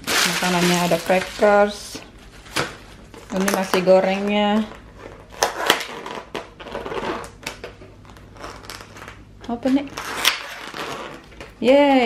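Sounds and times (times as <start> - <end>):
plastic containers crackling: 0.0 - 12.0.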